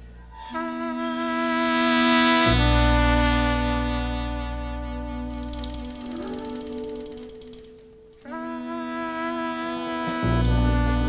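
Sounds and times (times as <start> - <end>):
held horn note: 0.3 - 11.0.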